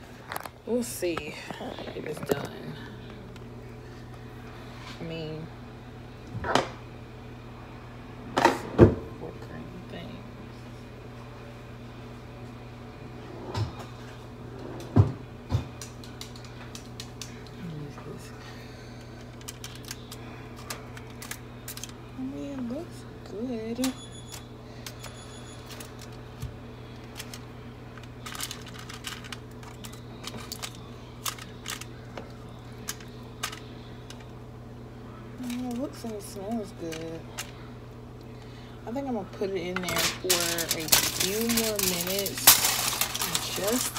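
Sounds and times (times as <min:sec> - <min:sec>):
steady low hum: 0:00.0 - 0:43.9
cutlery scraping foil pan: 0:39.9 - 0:43.9.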